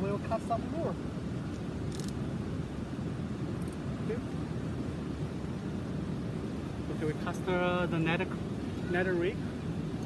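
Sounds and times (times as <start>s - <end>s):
river water rushing over falls: 0.0s - 10.0s.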